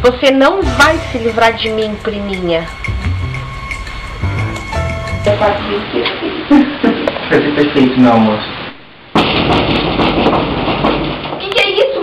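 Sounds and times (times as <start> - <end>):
loud rumbling noise: 0.0 - 7.8
irregular clattering knocks: 9.2 - 11.6.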